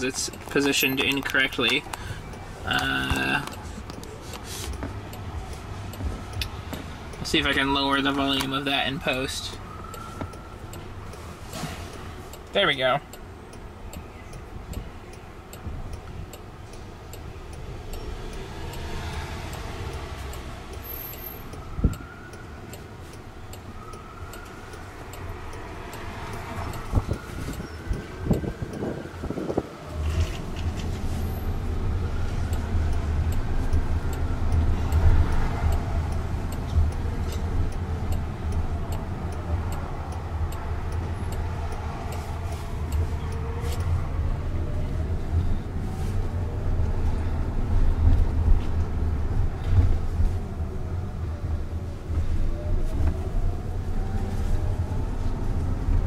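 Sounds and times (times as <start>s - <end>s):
faint steady ticking: 0.0s - 50.6s
road and tyre rumble: 0.0s - 56.0s
distant siren wailing: 7.8s - 11.4s, 17.8s - 45.8s, 50.6s - 55.6s.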